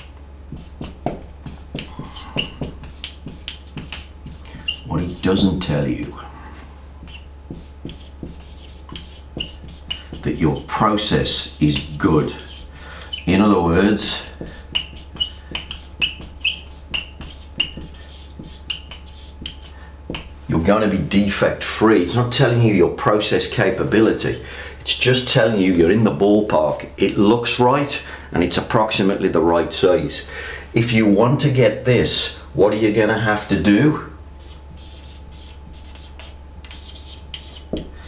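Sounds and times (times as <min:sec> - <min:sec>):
marker writing on whiteboard: 0:00.0 - 0:05.5, 0:07.0 - 0:13.3, 0:14.0 - 0:20.4, 0:34.4 - 0:38.0.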